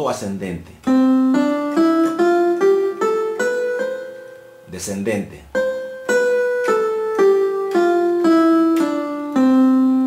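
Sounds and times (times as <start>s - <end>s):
electronic keyboard playing a scale: 0.8s - 4.8s, 5.5s - 10.0s.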